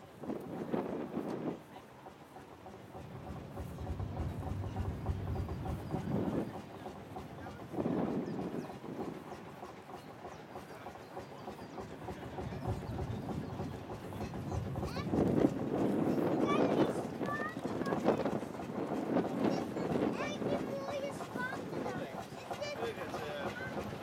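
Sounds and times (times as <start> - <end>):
people talking: 0.3 - 24.0
engine idling: 1.7 - 24.0.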